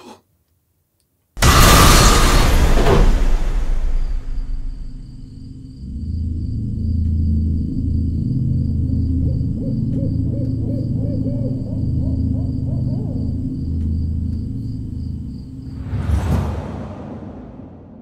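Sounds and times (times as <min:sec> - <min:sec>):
low droning horror score: 0:01.4 - 0:18.0
sudden whoosh: 0:15.6 - 0:18.0.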